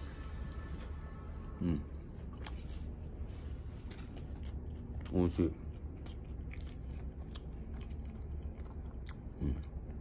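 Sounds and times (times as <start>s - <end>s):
person humming: 1.6s - 2.0s
wet chewing: 2.2s - 10.0s.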